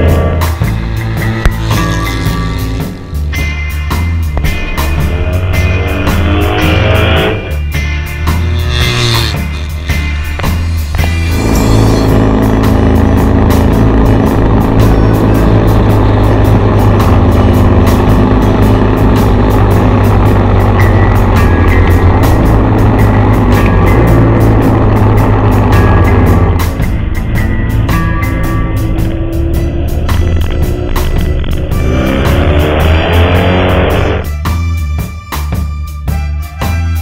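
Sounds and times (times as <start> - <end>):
motorcycle engine running: 0.0 - 34.4
music: 0.0 - 37.0.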